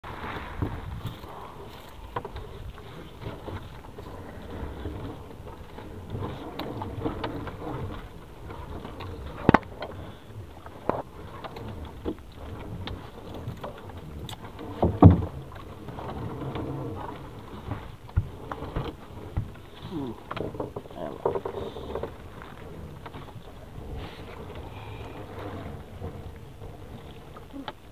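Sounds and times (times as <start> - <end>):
water and net washing: 0.0 - 27.9
sharp knocks against boat: 12.8 - 22.2.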